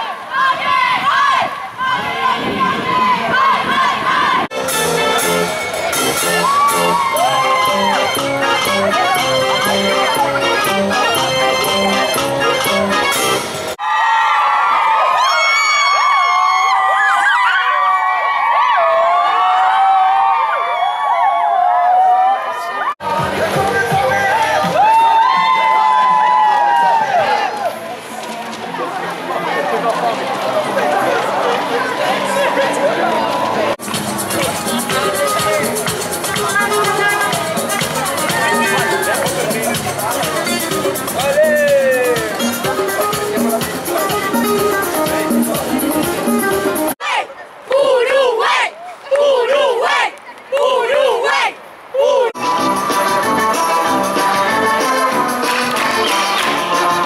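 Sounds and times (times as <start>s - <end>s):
young people shouting and cheering: 0.0s - 11.8s, 12.4s - 28.0s, 29.4s - 57.0s
crowd of marchers talking: 0.0s - 13.7s, 22.6s - 25.6s, 26.7s - 57.0s
street organ playing: 4.5s - 13.8s, 32.9s - 47.0s.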